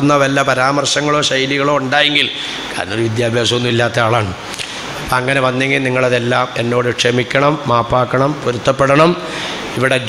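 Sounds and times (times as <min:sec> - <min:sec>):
man intoning a prayer: 0:00.0 - 0:10.0.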